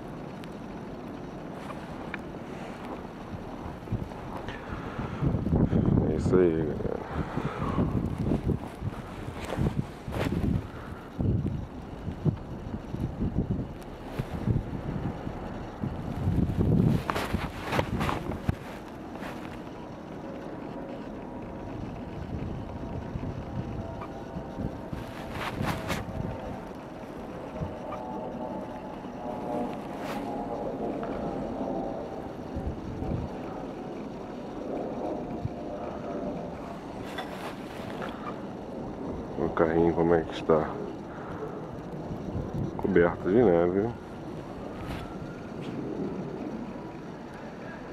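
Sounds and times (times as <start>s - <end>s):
faint steady hum: 0.0s - 47.9s
wind buffeting microphone: 0.0s - 47.9s.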